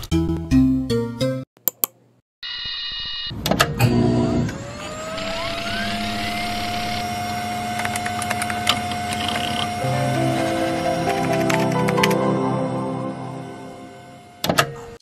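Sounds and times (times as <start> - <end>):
electronic gliding tones: 4.9 - 7.6.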